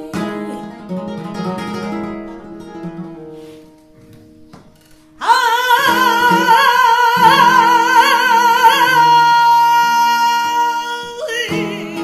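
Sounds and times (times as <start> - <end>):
flamenco guitar plucked notes: 0.0 - 12.0
woman singing long note: 5.2 - 12.0.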